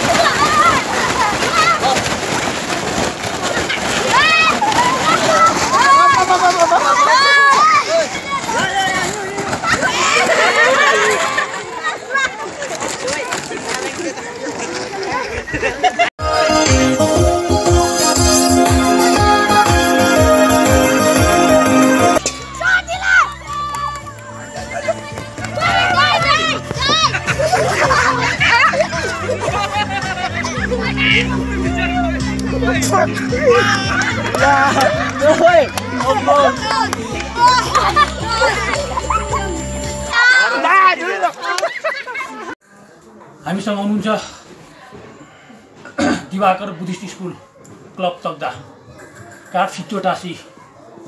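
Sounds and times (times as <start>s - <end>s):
children shouting: 0.0s - 12.5s, 22.1s - 32.3s, 33.2s - 42.6s
background music: 16.2s - 40.2s.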